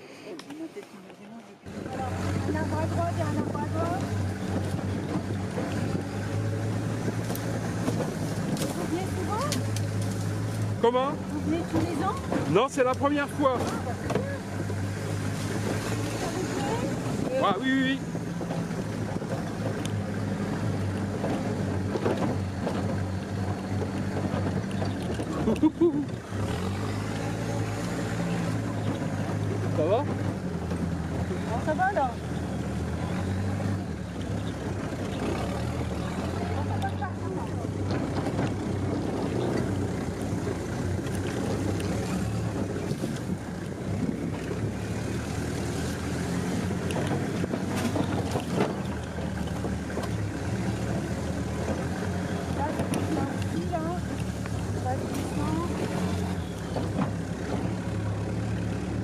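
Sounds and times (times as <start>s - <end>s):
jeep engine running: 1.6s - 59.0s.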